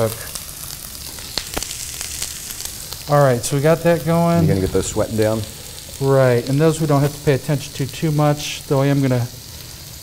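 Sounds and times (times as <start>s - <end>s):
onions sizzling in hot oil: 0.0s - 10.0s.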